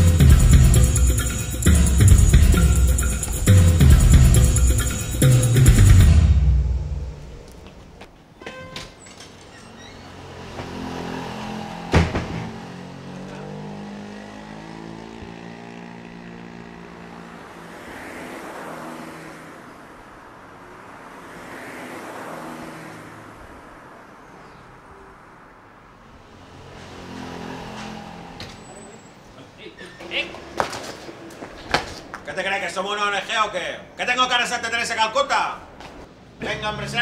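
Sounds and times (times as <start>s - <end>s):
cars passing: 0.0s - 8.4s, 9.3s - 37.0s
sharp thump: 11.9s - 12.7s.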